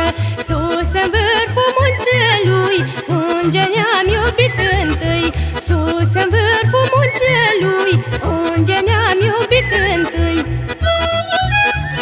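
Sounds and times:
woman singing ornamented melody: 0.0s - 10.4s.

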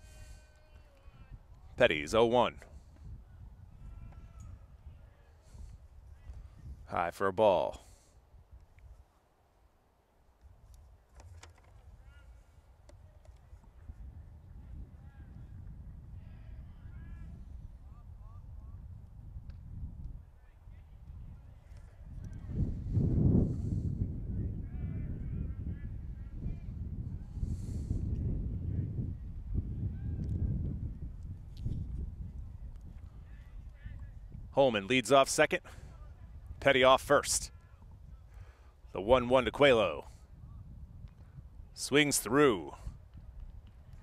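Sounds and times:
distant shouts and chatter: 0.0s - 1.7s, 3.2s - 6.6s.

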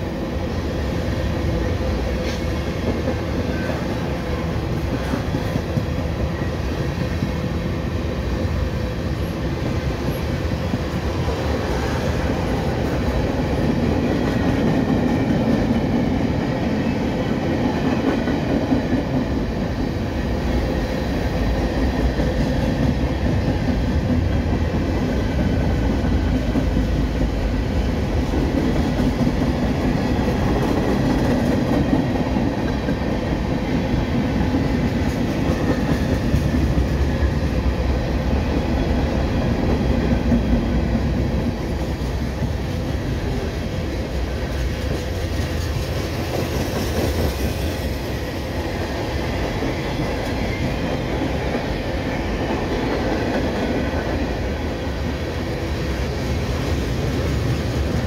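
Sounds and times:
freight train rolling past: 0.0s - 58.0s.

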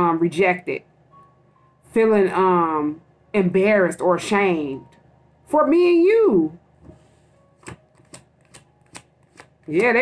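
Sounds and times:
cards clicking while shuffled: 7.6s - 10.0s.

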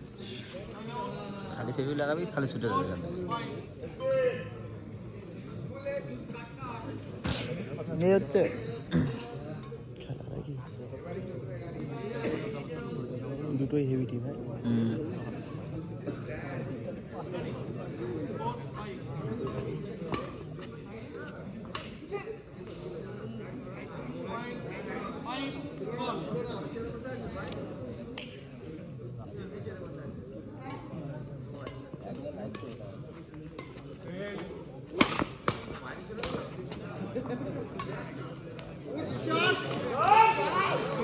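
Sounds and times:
background talk: 0.0s - 41.0s
crowd chatter: 0.0s - 41.0s
rackets striking shuttlecock: 31.6s - 32.8s, 34.9s - 36.6s.

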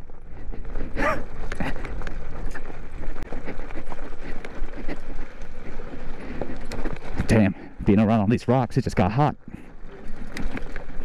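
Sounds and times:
bike rattling over bumps: 0.0s - 11.0s
bike tyres crunching on gravel: 0.0s - 11.0s.

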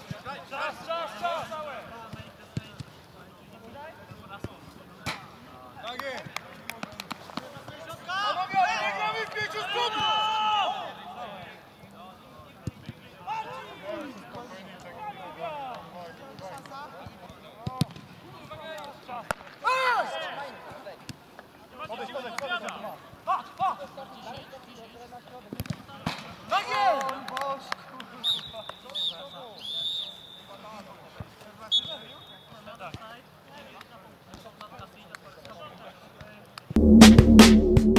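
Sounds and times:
referee's whistle blasts: 31.7s - 32.5s.

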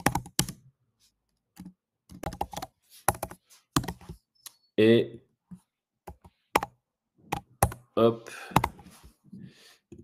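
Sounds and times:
computer keyboard typing: 0.0s - 0.6s, 1.6s - 4.2s, 6.1s - 7.8s, 8.5s - 8.8s.

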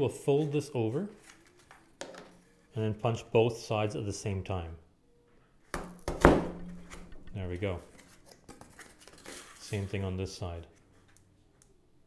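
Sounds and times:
hole punch crunching cardboard: 5.8s - 7.1s.

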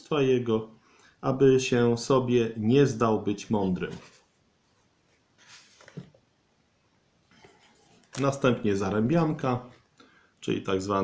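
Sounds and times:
soft rustle: 3.5s - 6.3s, 7.2s - 8.5s.

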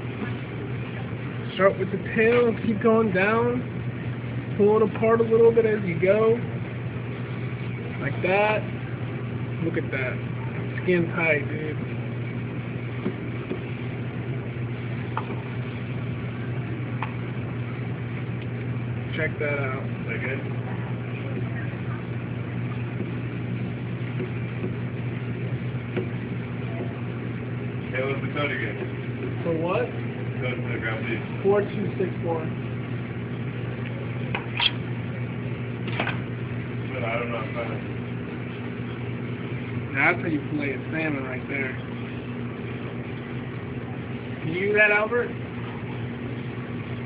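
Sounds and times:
low mechanical hum: 0.0s - 47.0s.

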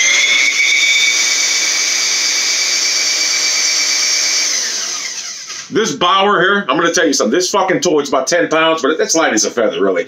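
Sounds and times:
drain cleaner motor whining: 0.0s - 5.7s.

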